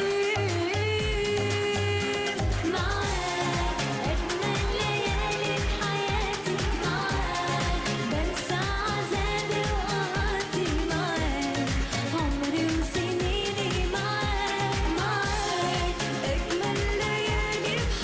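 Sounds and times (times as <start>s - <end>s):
band backing music: 0.0s - 18.0s
women singing pop song: 0.0s - 18.0s
kick drum beat: 2.4s - 18.0s.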